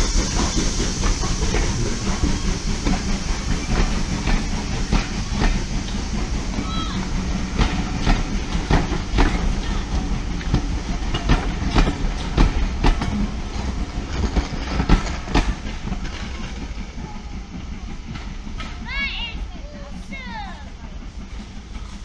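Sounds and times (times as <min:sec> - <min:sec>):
train rumbling past: 0:00.0 - 0:22.0
wheels clacking over rail joints: 0:00.0 - 0:22.0.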